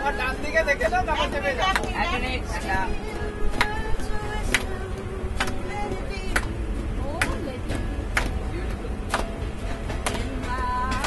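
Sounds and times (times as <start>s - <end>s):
music: 0.0s - 11.0s
train carriage rumble: 0.0s - 11.0s
voices: 0.0s - 11.0s
hand claps keeping a beat: 1.2s - 11.0s.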